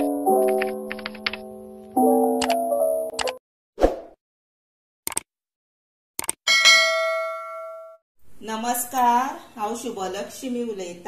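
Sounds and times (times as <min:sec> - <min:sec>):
bright bell ding: 0:06.5 - 0:08.0.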